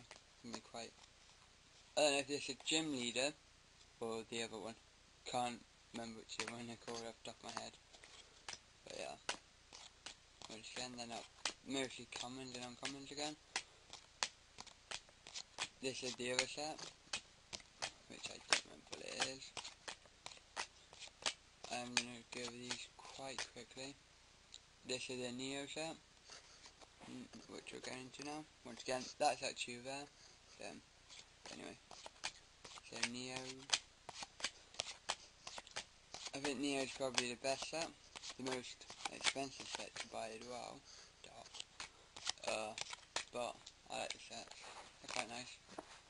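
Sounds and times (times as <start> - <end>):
trading cards flicking: 6.0 - 23.7, 31.1 - 40.7, 41.3 - 45.4.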